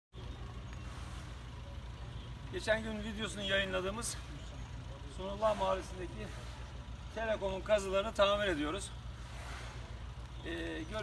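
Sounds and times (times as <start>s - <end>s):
heavy machinery engine rumbling: 0.1s - 11.0s.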